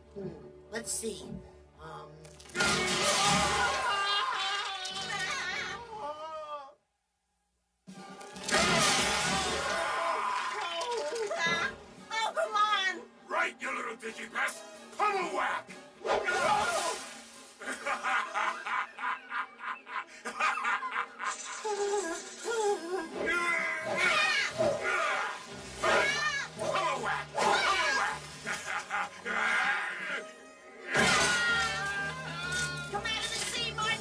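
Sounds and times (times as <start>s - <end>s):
wooden crate smashing: 2.4s - 4.0s, 8.3s - 10.0s, 30.9s - 32.7s
wavering voice-like cry: 21.8s - 32.9s
dramatic music: 23.1s - 34.0s.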